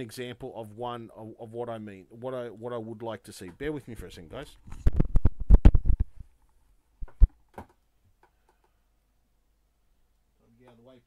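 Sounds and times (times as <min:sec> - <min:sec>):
knocks and thumps: 0:07.0 - 0:07.8.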